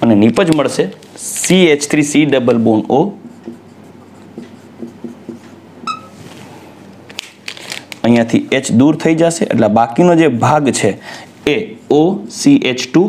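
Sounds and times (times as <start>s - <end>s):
marker writing on whiteboard: 3.1s - 6.2s
high marker squeak: 5.9s - 6.2s
man talking: 8.0s - 13.0s.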